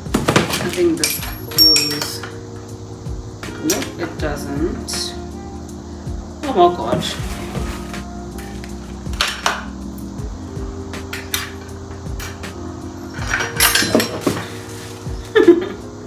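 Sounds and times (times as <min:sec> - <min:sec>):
soft background music: 0:00.0 - 0:16.0
metal bar tools clinking: 0:00.7 - 0:02.4, 0:13.0 - 0:14.5.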